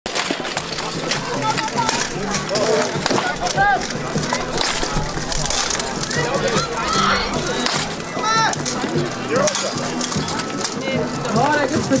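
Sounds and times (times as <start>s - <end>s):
weapons clanking on metal armour: 0.1s - 12.0s
people shouting: 1.0s - 9.9s.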